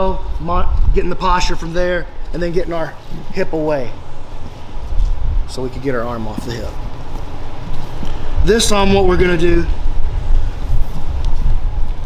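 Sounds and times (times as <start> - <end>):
drum fan rumbling: 0.0 - 12.0.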